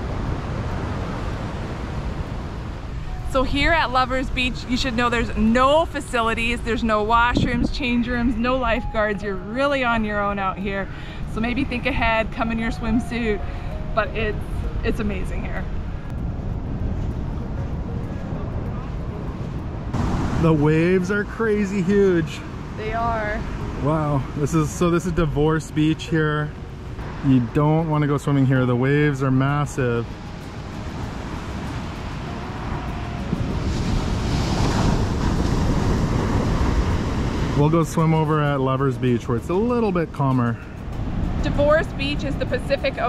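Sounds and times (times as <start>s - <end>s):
ocean surf breaking: 0.0s - 43.0s
wind buffeting microphone: 0.0s - 43.0s
surf breaking on beach: 20.0s - 25.0s, 30.1s - 41.8s.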